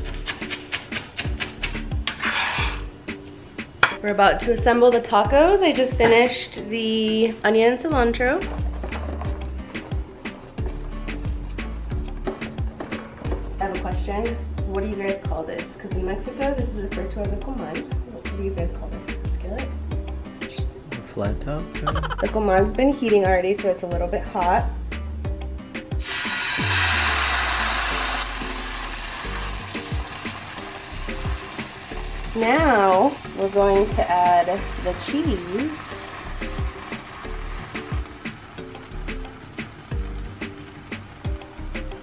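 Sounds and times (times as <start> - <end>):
tortillas sizzling on griddle: 0.0 - 2.9, 8.5 - 13.6, 25.9 - 42.0
music with steady beat and bass: 1.2 - 3.2, 8.0 - 14.9, 18.6 - 22.9, 24.0 - 26.0, 36.2 - 42.0.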